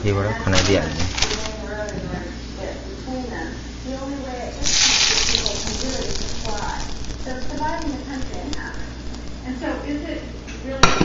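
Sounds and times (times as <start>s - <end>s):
hot oil sizzling and crackling: 4.6s - 9.6s.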